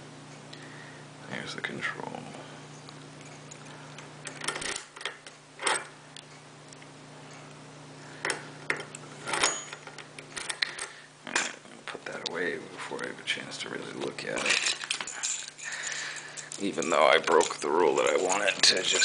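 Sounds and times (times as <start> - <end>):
keys and lock clicking: 3.2 - 5.9, 8.7 - 10.9.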